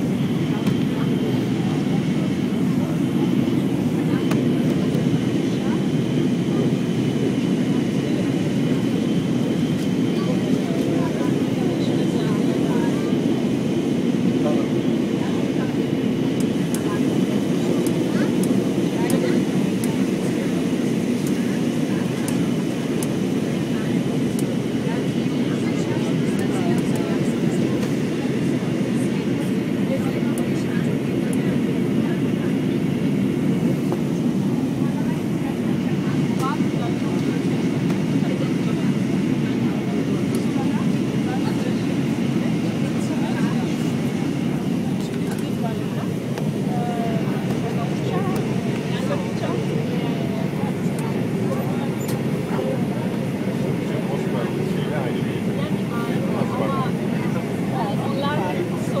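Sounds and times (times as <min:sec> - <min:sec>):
airliner cabin noise: 0:00.0 - 0:59.0.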